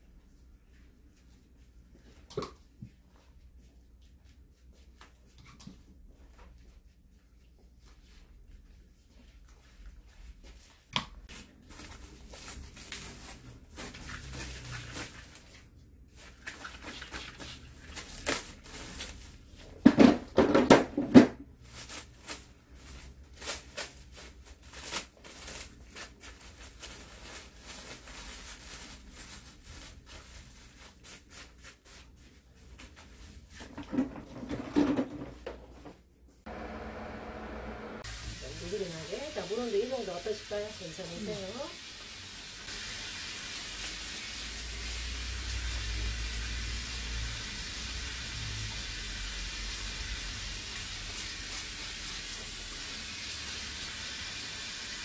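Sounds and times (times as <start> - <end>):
plastic film crinkling: 11.3 - 19.6, 21.6 - 33.6
brush working dye into hair: 38.0 - 41.8
water running from sprayer: 38.0 - 55.0.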